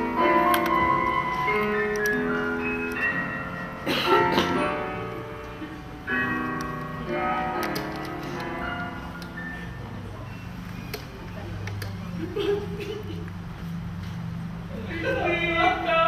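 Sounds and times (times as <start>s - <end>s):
slow piano music: 0.0s - 12.8s.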